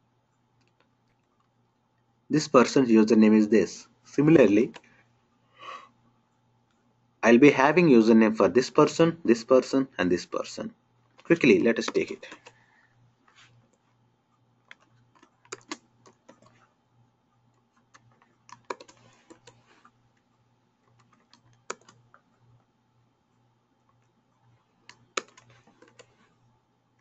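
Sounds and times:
computer keyboard keystrokes: 11.2s - 12.6s, 14.7s - 16.6s, 17.7s - 19.9s, 20.8s - 22.2s, 24.8s - 26.2s.

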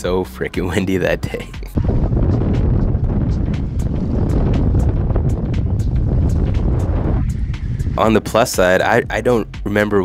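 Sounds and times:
wind buffeting microphone: 1.7s - 9.5s.

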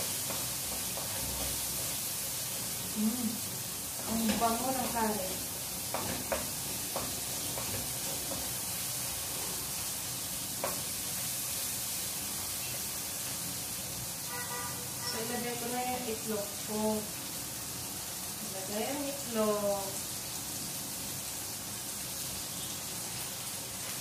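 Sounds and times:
wooden spatula knocking pan: 0.0s - 2.0s, 4.0s - 8.6s, 10.6s - 10.9s
oil sizzling in a wok: 0.0s - 24.0s.

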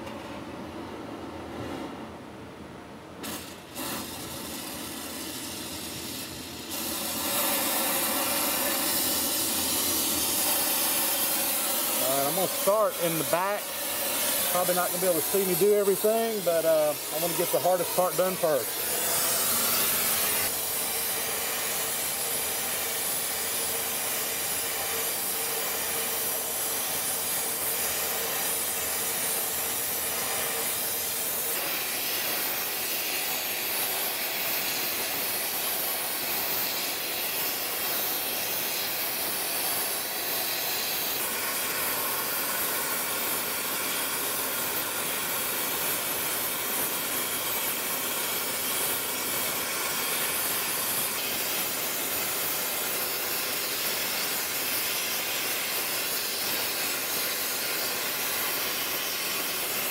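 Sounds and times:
torch flame hissing: 3.2s - 59.9s.

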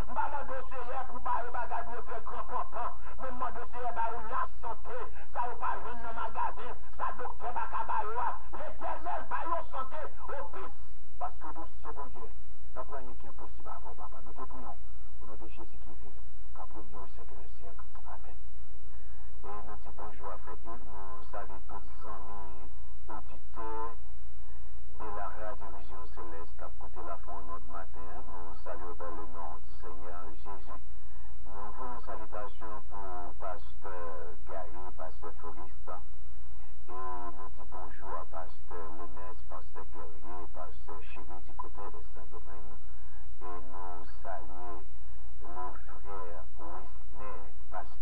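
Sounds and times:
indistinct voices talking and praying: 0.0s - 48.0s
steady low hum: 0.0s - 48.0s.

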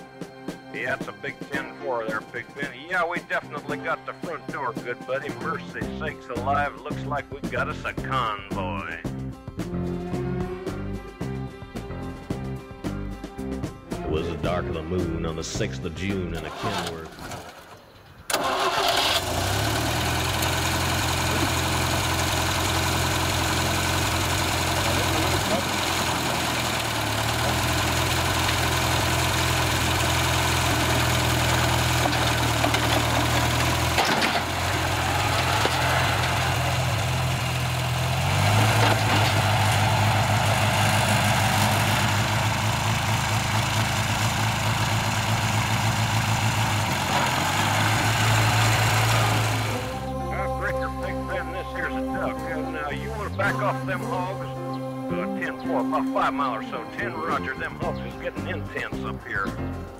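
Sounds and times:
tractor engine running: 0.0s - 59.9s.

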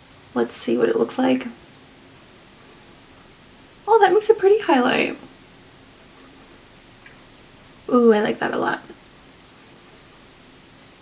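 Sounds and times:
faint steady hiss: 0.0s - 11.0s
woman speaking: 0.3s - 1.6s, 3.9s - 5.3s, 7.9s - 9.0s.

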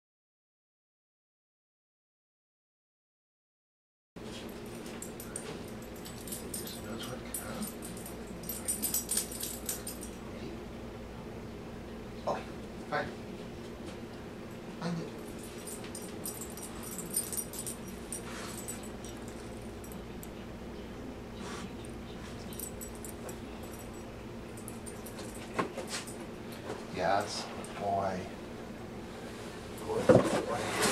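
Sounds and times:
steady low hum: 4.2s - 30.9s
faint light clinks: 4.3s - 10.6s, 14.5s - 20.9s, 21.8s - 28.1s
dog sniffing: 15.5s - 19.6s.

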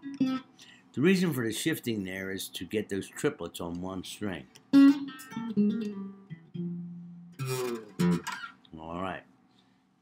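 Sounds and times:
slow jazz guitar: 0.0s - 0.8s, 4.7s - 8.6s.

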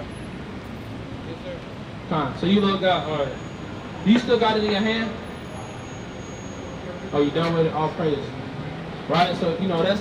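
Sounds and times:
city street traffic hum: 0.0s - 10.0s.

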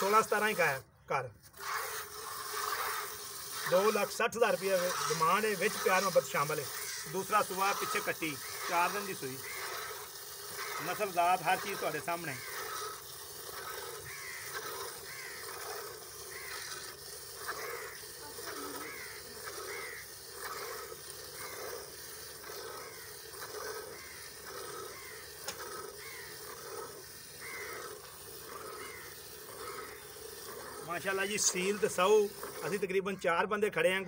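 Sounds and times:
milk squirting into bucket: 0.0s - 33.2s.

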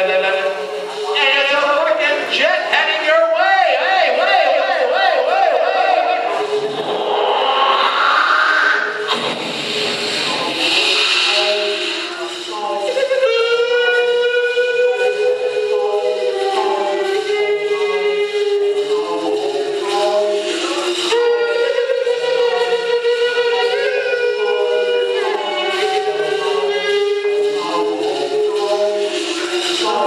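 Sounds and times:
choir-like sung drone: 3.7s - 13.0s, 14.9s - 30.0s.

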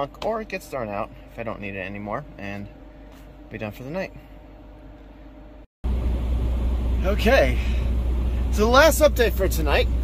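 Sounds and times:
faint steady hum: 0.0s - 10.0s
diesel truck engine idling: 5.8s - 10.0s.

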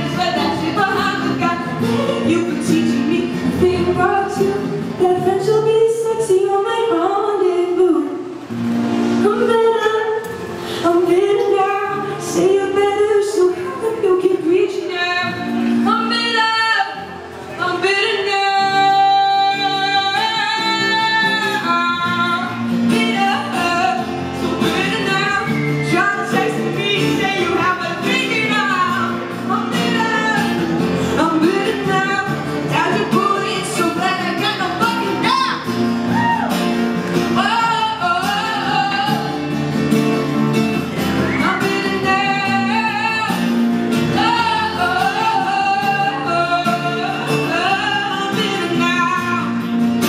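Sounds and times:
woman singing: 0.0s - 8.4s, 9.2s - 36.2s, 37.1s - 50.0s
acoustic guitars: 0.0s - 50.0s.

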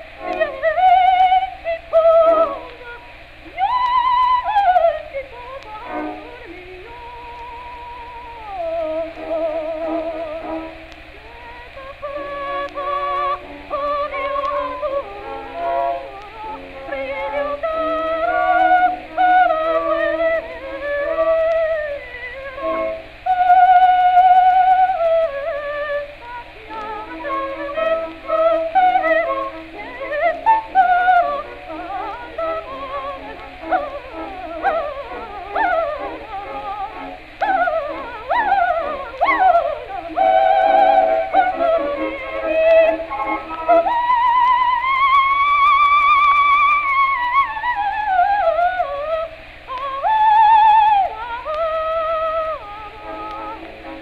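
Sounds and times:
low held accompaniment: 0.0s - 54.0s
soprano singing an aria: 0.0s - 54.0s
steady low hum: 0.0s - 54.0s.

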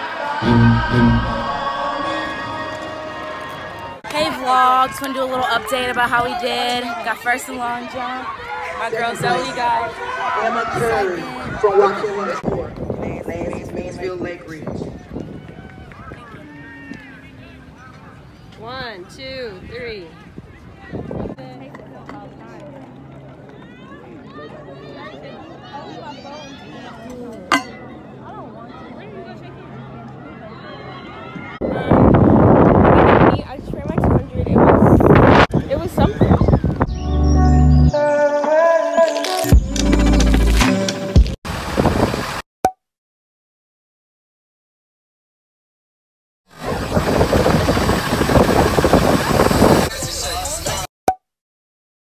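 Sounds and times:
steady low rumble: 0.4s - 2.3s
people talking: 4.1s - 8.3s, 8.9s - 9.9s, 33.2s - 35.0s
indistinct chatter: 20.0s - 32.0s.

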